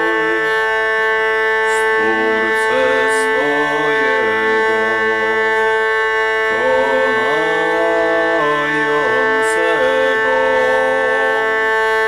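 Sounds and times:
hurdy-gurdy drone: 0.0 - 12.0
hurdy-gurdy melody note: 0.0 - 12.0.

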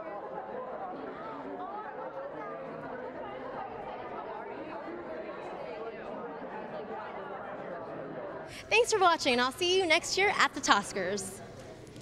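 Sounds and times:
murmur of overlapping voices: 0.0 - 12.0.

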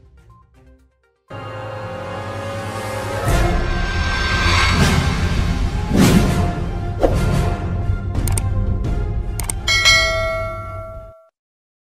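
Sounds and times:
low rumble: 3.3 - 7.7
sharp ticks: 8.2 - 8.5, 9.4 - 9.7
bell-like chime: 9.7 - 11.3.

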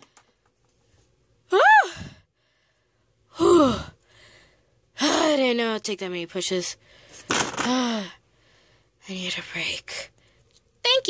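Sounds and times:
girl exhaling: 1.5 - 2.2, 3.3 - 4.4
girl groaning: 1.5 - 2.2, 3.3 - 3.9.

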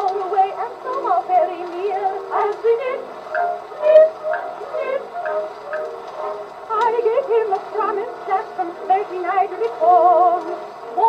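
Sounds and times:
women's vocal trio singing: 0.0 - 5.6, 6.7 - 11.0.

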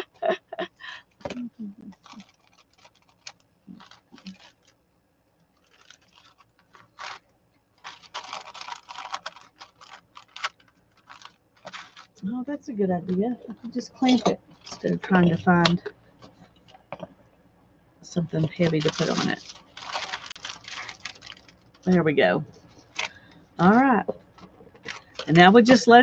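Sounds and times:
paper and cloth rustling: 1.2 - 4.8, 5.6 - 7.2, 7.8 - 12.3, 18.4 - 23.3.

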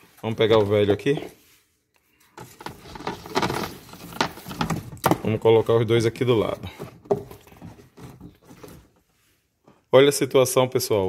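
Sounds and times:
air filters rustling: 0.0 - 9.9.

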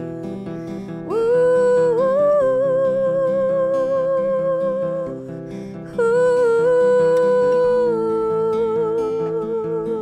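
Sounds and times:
fingerpicked acoustic guitar: 0.0 - 10.0
woman singing long held notes: 1.1 - 5.3, 5.9 - 10.0.

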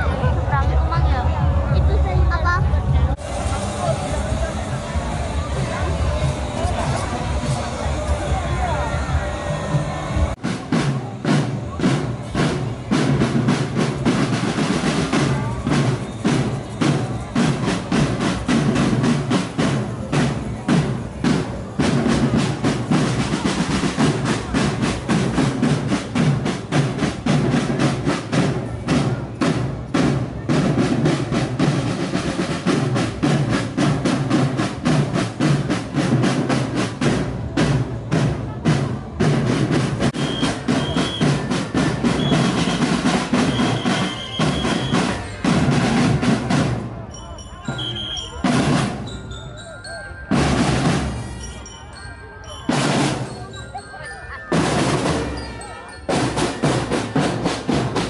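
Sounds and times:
snare drum cadence with rolls: 3.1 - 49.2, 52.5 - 53.6, 54.5 - 58.0.

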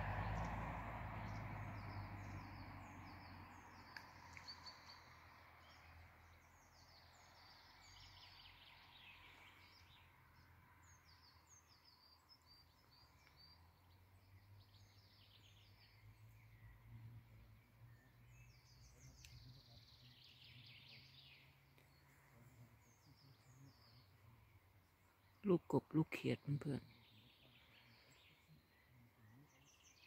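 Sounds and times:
faint high bird chirps: 1.2 - 25.5.

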